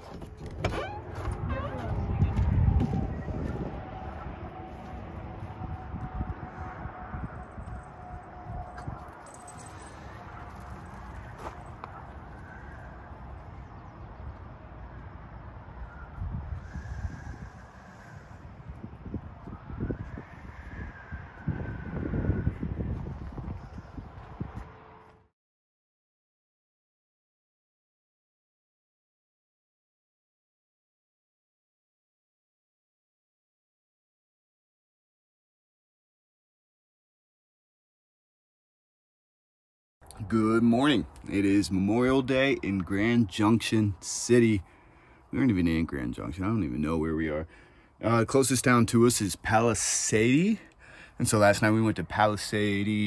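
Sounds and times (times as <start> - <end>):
distant highway traffic hum: 0.0 - 25.3, 40.0 - 53.0
wind gusts on microphone: 0.1 - 25.0.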